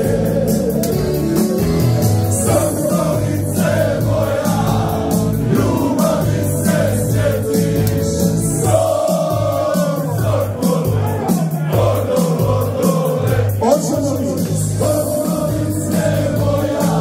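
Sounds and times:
crowd singing along: 0:00.0 - 0:17.0
electronic keyboard backing: 0:00.0 - 0:17.0.

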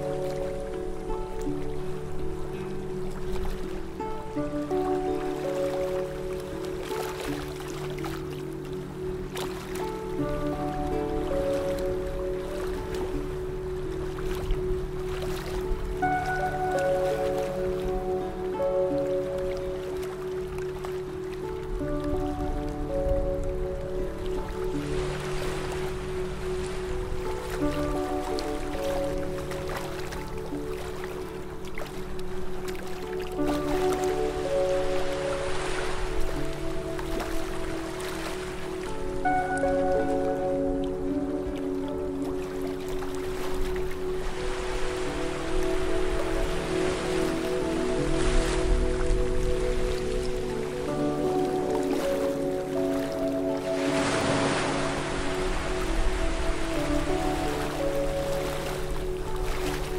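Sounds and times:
ambient music held chords: 0:00.0 - 0:59.9
sea surf waves: 0:00.0 - 0:59.9.

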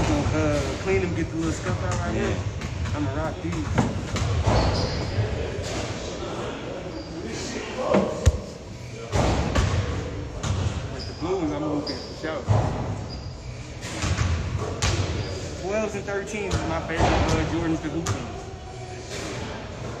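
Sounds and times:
voices echoing in a gym hall: 0:00.0 - 0:20.0.

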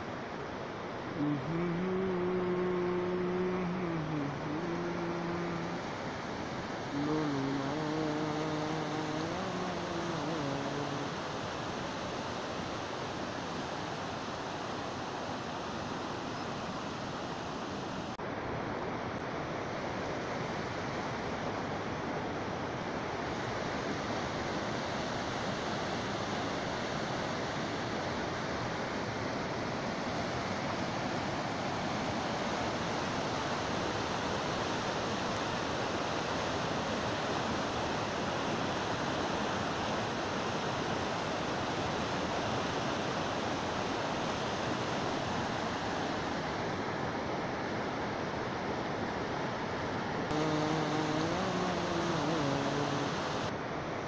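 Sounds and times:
river rushing over boulders: 0:00.0 - 0:54.0.

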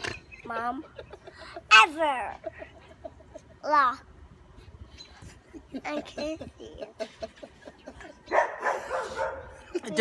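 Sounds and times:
dog barking: 0:08.3 - 0:09.6.

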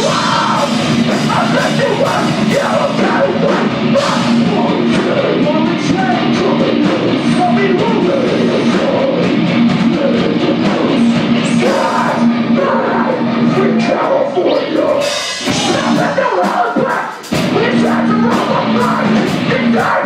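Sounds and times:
distorted guitars: 0:00.0 - 0:20.0
drums: 0:00.0 - 0:20.0
person singing hardcore vocals: 0:00.0 - 0:20.0.

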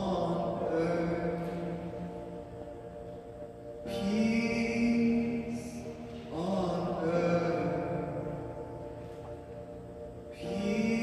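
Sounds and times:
man singing unaccompanied: 0:00.0 - 0:02.2, 0:03.9 - 0:08.6, 0:10.3 - 0:11.0.

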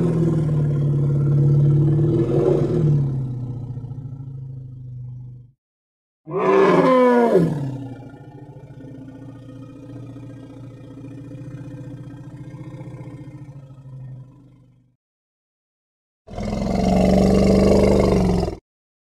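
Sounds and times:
elephant harsh roar: 0:06.3 - 0:07.9, 0:16.3 - 0:18.6.

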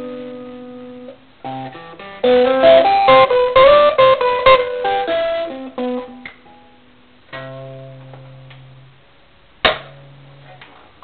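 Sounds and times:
electric guitar note: 0:00.0 - 0:08.9.

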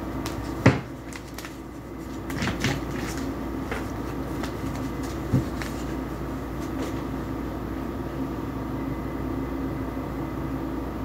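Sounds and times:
steady low hum: 0:00.0 - 0:11.0
cards being shuffled: 0:00.1 - 0:07.2.

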